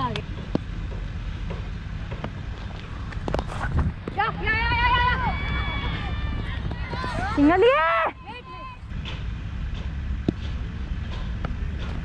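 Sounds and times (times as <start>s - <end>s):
wind rumble on microphone: 2.0s - 7.8s.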